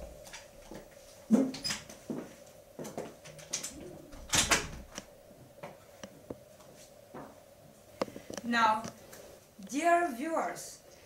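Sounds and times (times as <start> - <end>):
faint steady hum: 0.0 - 11.0
door clicks and squeaks: 1.3 - 1.9, 3.3 - 5.0.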